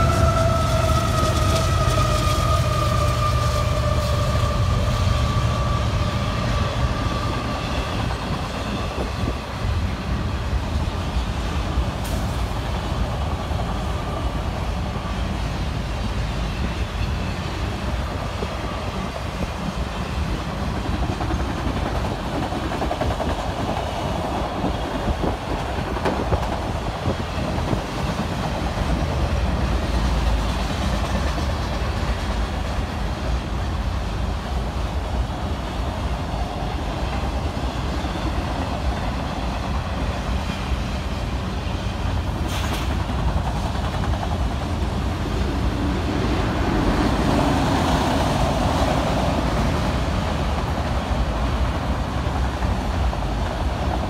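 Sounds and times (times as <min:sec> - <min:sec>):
freight train rumbling past: 0:00.0 - 0:54.0.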